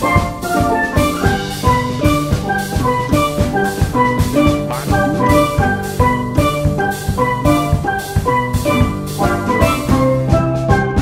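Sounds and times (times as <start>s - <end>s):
drum kit steady beat: 0.0s - 10.3s
steelpan notes: 0.0s - 11.0s.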